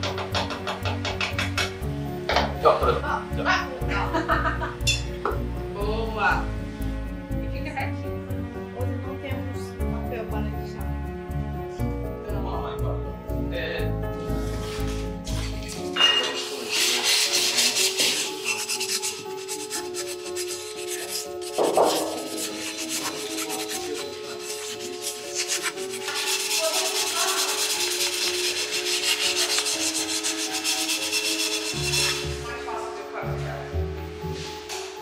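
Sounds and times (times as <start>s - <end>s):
sandpaper rubbing on glass: 14.4s - 32.4s.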